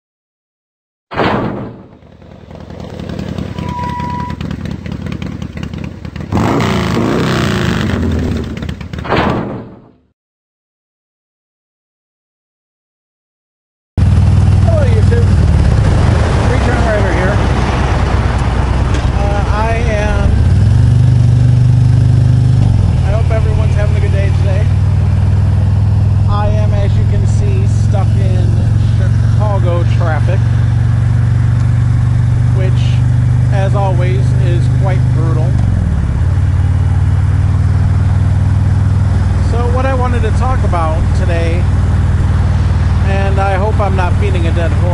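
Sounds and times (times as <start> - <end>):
motorcycle engine droning: 1.5 - 9.2, 14.0 - 44.9
wind rush: 15.2 - 21.8.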